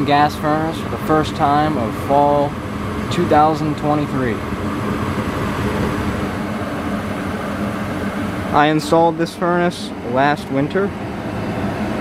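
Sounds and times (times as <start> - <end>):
gas furnace running: 0.0 - 12.0
low even hum: 0.0 - 12.0
rush of flame and fan: 0.0 - 12.0.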